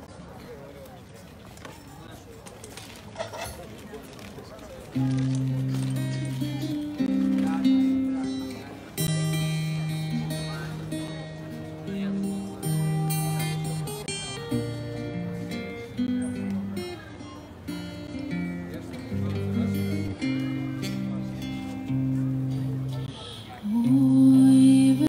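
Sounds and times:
amplified acoustic guitar playing: 5.0s - 25.0s.

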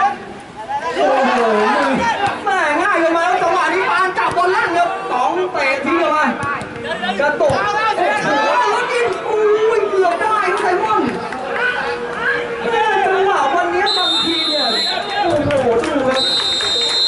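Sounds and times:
people talking: 0.6s - 17.0s
referee whistle blasts: 13.8s - 15.2s, 16.2s - 17.0s.

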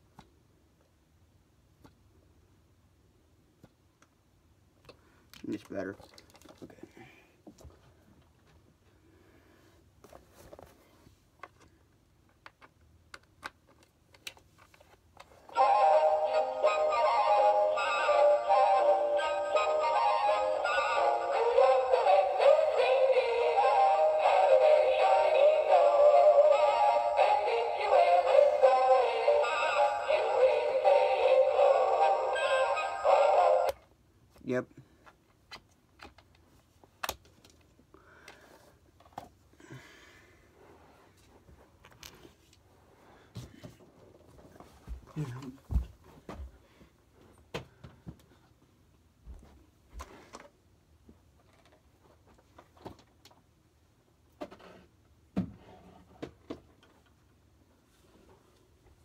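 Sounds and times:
christmas song from small speaker: 15.3s - 33.9s.

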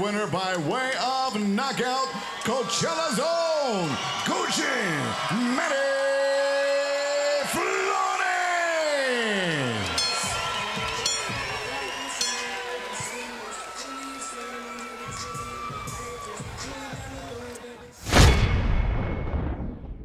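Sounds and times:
crowd cheering and whooping: 0.0s - 17.9s
arena music: 6.9s - 18.2s.

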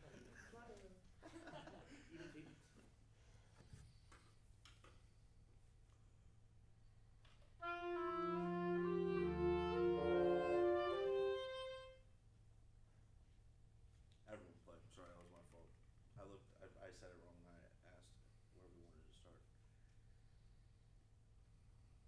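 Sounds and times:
wind ensemble playing: 7.6s - 12.0s.

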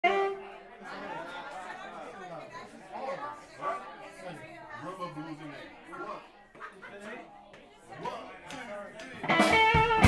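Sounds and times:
bar-room chatter: 0.0s - 10.0s.

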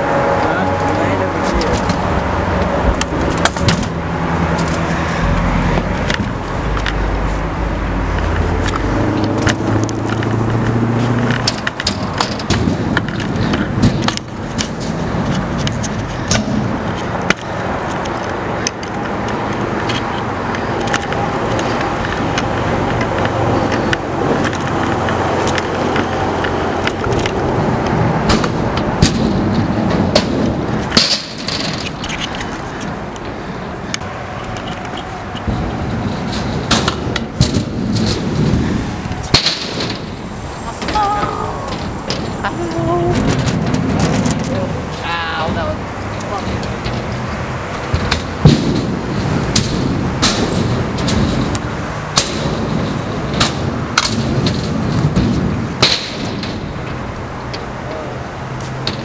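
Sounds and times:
scooter wheels rolling on concrete: 0.0s - 59.0s
scooter clacks and knocks: 8.1s - 40.2s, 46.3s - 57.8s.

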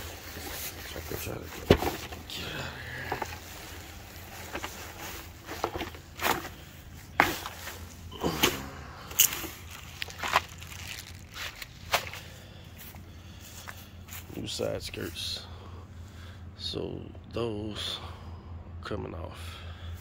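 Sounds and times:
steady low rumble: 0.0s - 20.0s
plastic wrap crinkling: 9.2s - 12.2s.

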